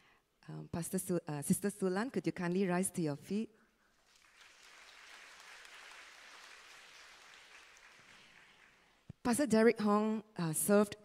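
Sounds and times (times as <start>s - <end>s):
faint applause: 4.1s - 9.0s.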